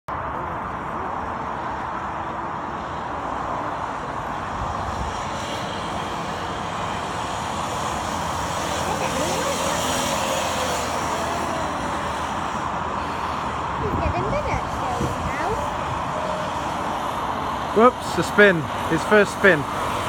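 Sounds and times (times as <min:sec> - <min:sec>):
go-kart engine running: 0:05.0 - 0:20.0.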